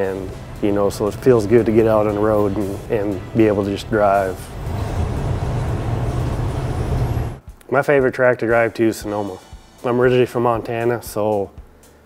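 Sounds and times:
truck road and engine rumble: 0.0 - 7.4.

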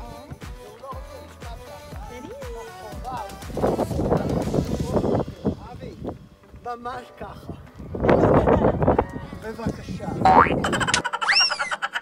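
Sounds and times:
springy swooping tone: 10.3 - 11.0
cartoon rising squeak: 10.3 - 11.8.

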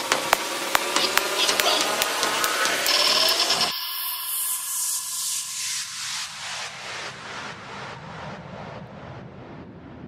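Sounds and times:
pulsing hiss: 0.0 - 6.9
low rumbling noise effect: 0.0 - 10.0.

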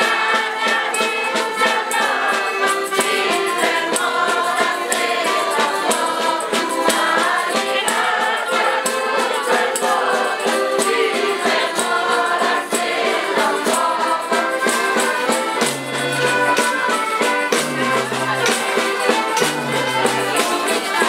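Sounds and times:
group singing folk song: 0.0 - 21.0
instrumental accompaniment: 0.0 - 21.0.

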